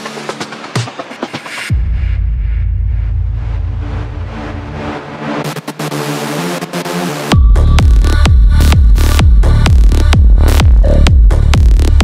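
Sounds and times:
deep sub-bass drone: 1.7 - 6.0, 7.3 - 12.0.

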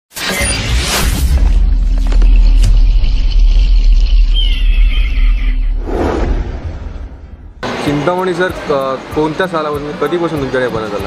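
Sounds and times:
deep bass rumble: 1.3 - 7.8.

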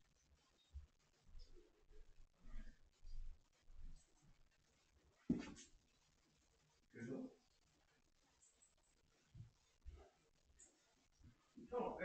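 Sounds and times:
footsteps on wooden floor: 5.3 - 5.7.

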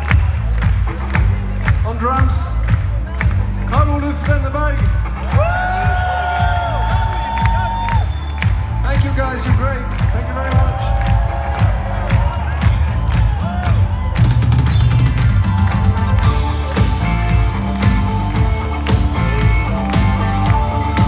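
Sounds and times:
heavy drum beat: 0.0 - 7.7, 8.4 - 21.0
crowd cheering and whooping: 5.2 - 9.4, 10.2 - 21.0
live rock band playing: 8.3 - 21.0.

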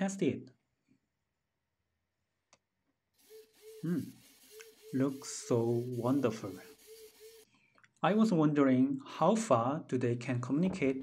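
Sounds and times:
servo motors whirring: 3.2 - 7.4.

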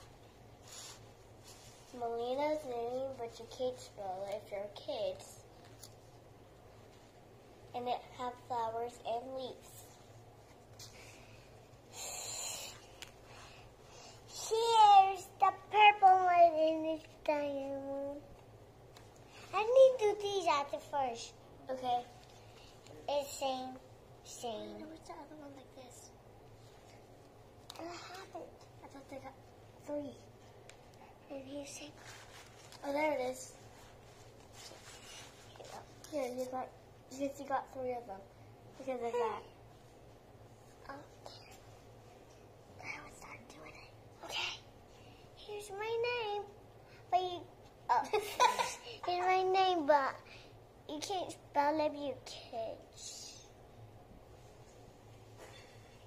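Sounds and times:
girl whispering: 11.9 - 12.9, 27.8 - 29.2, 42.8 - 44.7.

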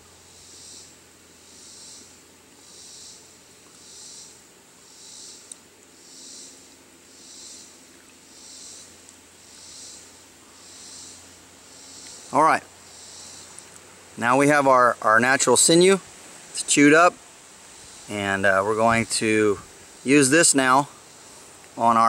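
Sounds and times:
insects pulsing chorus: 0.0 - 22.0.

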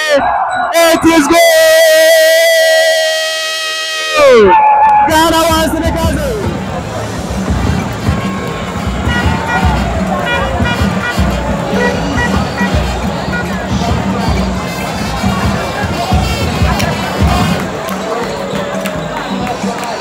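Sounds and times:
stadium crowd noise: 0.0 - 20.0.

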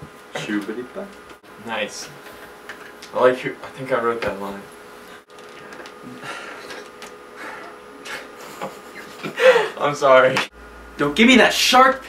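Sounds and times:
faint electrical hum: 0.0 - 12.0
stifled breathy laughter: 6.1 - 9.8.

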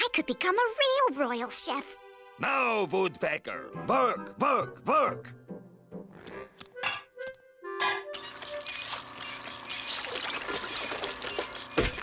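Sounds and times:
machine working sound effect: 8.1 - 12.0.

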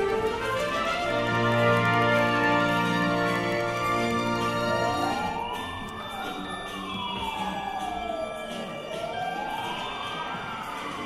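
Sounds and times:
wailing siren: 0.0 - 11.0.

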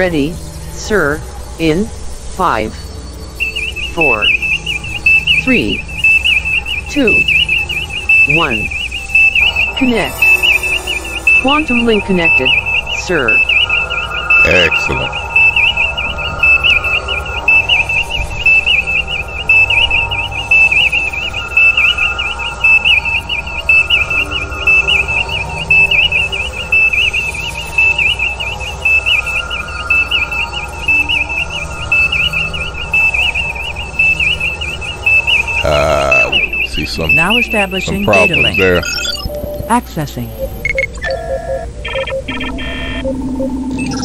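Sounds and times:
low electronic hum: 0.0 - 44.0
high fluttering electronic warble: 3.4 - 39.6.

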